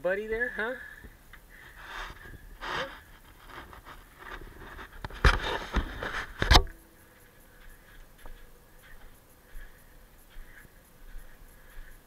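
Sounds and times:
donkeys sniffing and blowing: 1.5s - 4.2s.

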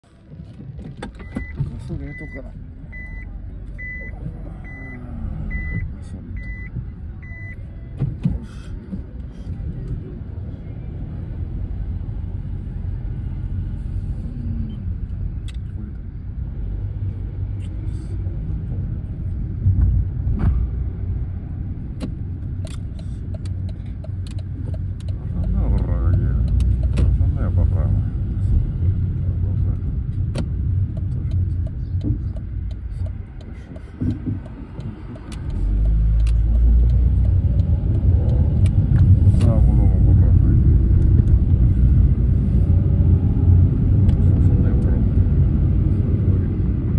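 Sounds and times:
car road and engine rumble: 0.0s - 46.9s
light ticks: 22.0s - 27.1s, 30.4s - 39.6s.

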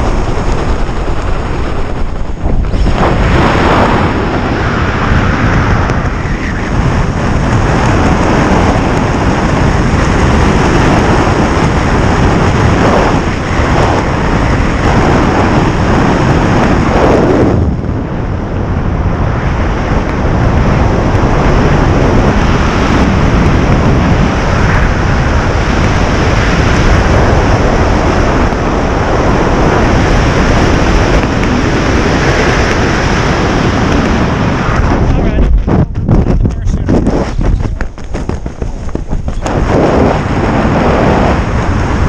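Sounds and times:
wind roaring over microphone: 0.0s - 42.0s.

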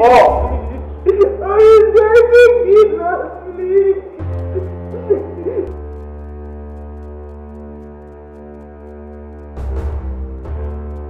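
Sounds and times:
low droning film score: 0.0s - 11.0s.

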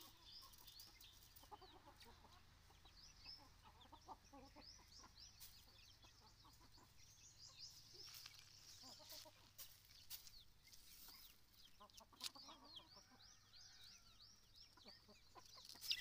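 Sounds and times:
hen clucking: 0.0s - 13.8s, 14.6s - 16.0s
chicks peeping: 0.0s - 16.0s.

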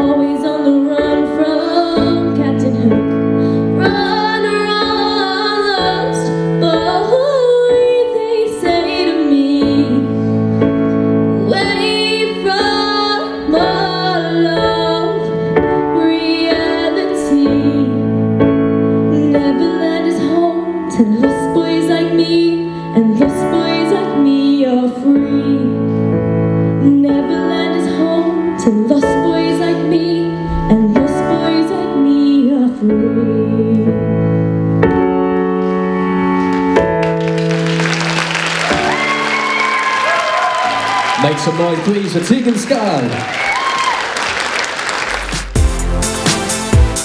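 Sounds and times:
girl singing into microphone: 0.0s - 10.3s, 11.4s - 18.1s, 19.1s - 26.0s, 26.8s - 34.0s
instrumental backing track: 0.0s - 43.0s, 44.9s - 47.0s
audience applauding: 36.5s - 45.8s
electronic music with deep bass: 45.3s - 47.0s.

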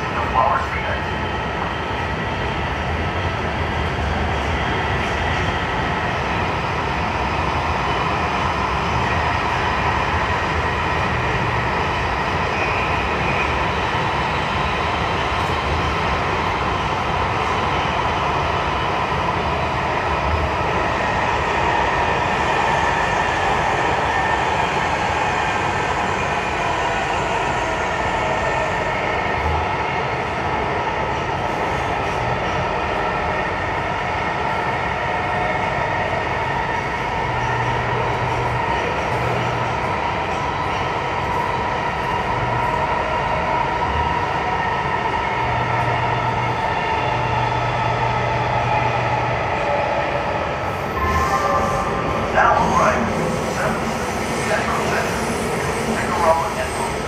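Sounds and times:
train rolling rumble: 0.0s - 57.0s.

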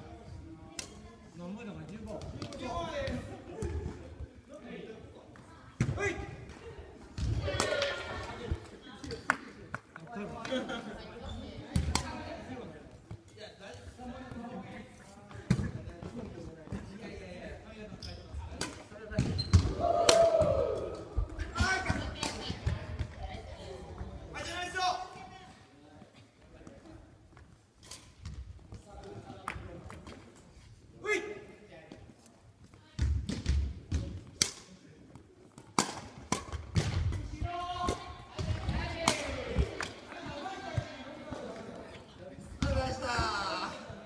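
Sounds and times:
racket striking shuttlecock: 35.7s - 37.0s.

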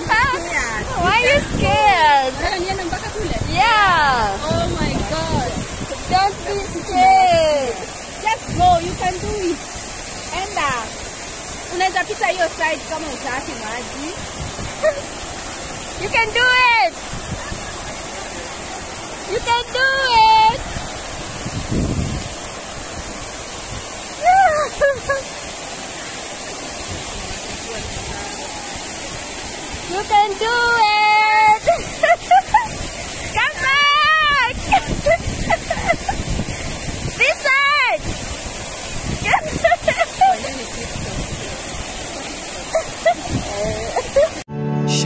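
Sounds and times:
fountain water splashing: 0.0s - 44.5s.

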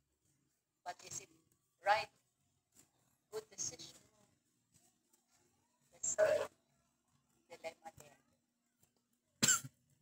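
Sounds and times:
person coughing: 9.4s - 9.7s.

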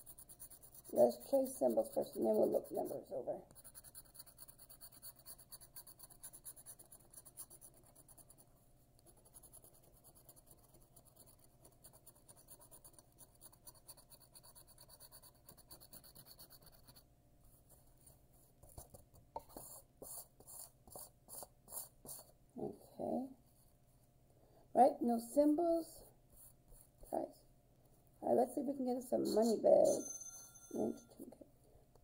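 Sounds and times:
scratching scratch-off ticket: 0.0s - 17.0s.

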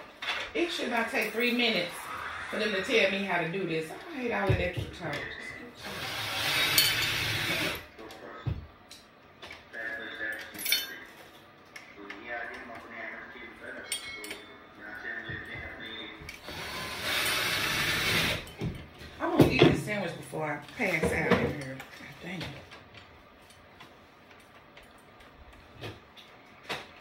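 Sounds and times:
small power tool running: 5.8s - 7.9s, 16.4s - 18.5s.

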